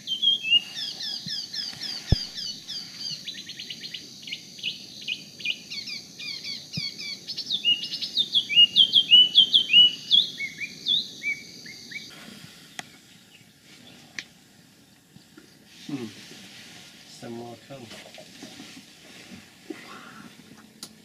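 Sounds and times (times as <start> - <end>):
bird singing whistled notes and trills: 0.0 - 14.1.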